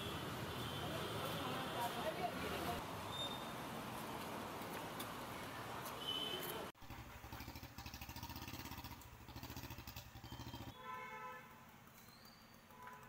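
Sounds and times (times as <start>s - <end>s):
motorcycle engine idling: 6.8s - 10.8s
horn honk: 10.6s - 11.5s.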